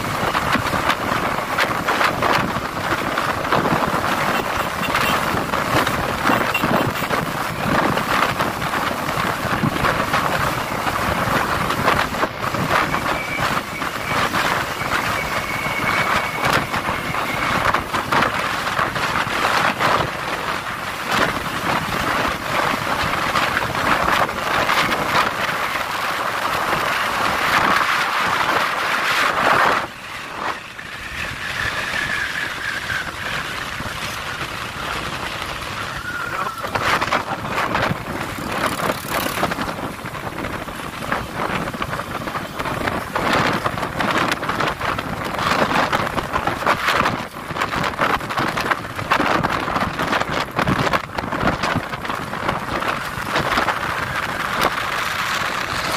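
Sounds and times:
wind buffeting microphone: 0.0s - 55.9s
motorcycle engine running: 0.1s - 19.4s, 32.9s - 44.8s.

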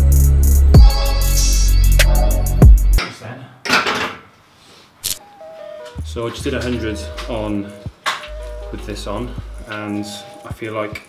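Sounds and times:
music with heavy beat: 0.0s - 3.0s.

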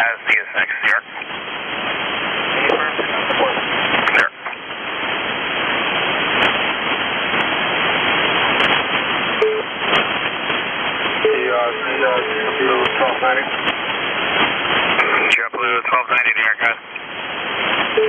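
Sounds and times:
voice over radio: 0.0s - 1.3s, 2.5s - 4.6s, 11.3s - 13.6s, 15.0s - 16.9s
radio hiss and static: 0.0s - 18.0s.

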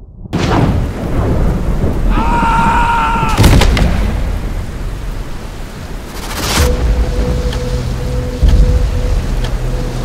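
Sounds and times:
sharp thunder crack: 0.0s - 4.9s
low rumbling thunder: 0.0s - 6.0s
heavy rain: 0.4s - 10.0s.

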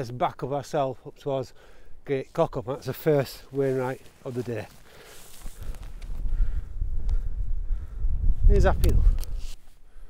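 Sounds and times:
wind buffeting microphone: 5.4s - 10.0s.

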